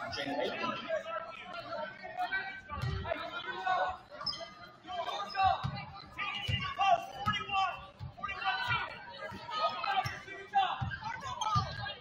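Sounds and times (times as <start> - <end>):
overlapping voices and chatter: 0.0 - 12.0.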